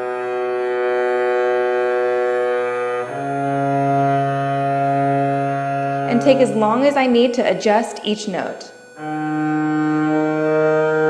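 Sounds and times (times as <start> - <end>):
bowed double bass notes: 0.0 - 11.0.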